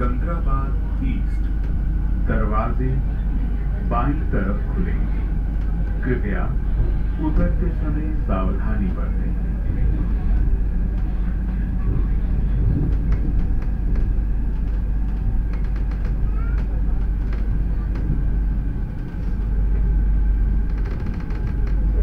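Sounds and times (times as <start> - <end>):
train rumble inside carriage: 0.0 - 22.0.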